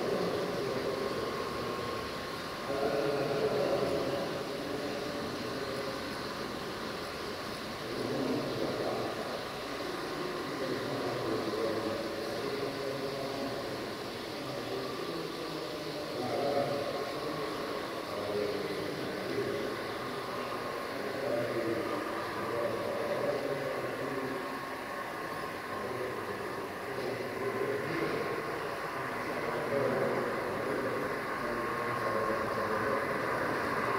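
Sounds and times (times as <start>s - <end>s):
model train running on track: 0.0s - 33.9s
room noise: 0.0s - 33.9s.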